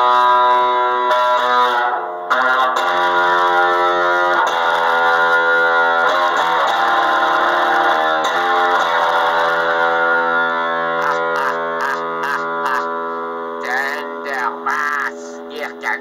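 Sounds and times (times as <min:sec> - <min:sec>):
electric bass chord ringing: 0:00.0 - 0:16.0
scratchy string noises: 0:05.8 - 0:16.0.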